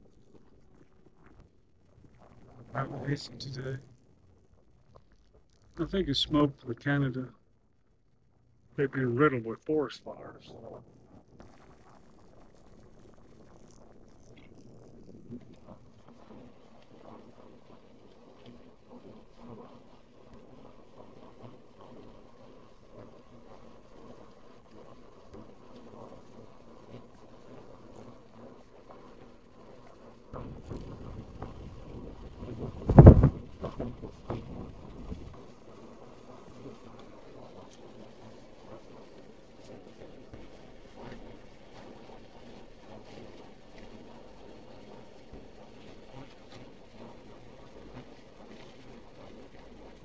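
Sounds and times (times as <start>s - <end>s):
wind rumble on microphone: 10.5s - 50.0s
wind buffeting microphone: 30.4s - 35.4s.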